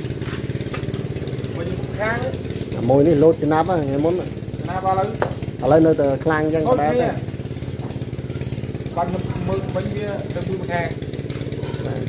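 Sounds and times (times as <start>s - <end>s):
small engine putter: 0.0s - 12.0s.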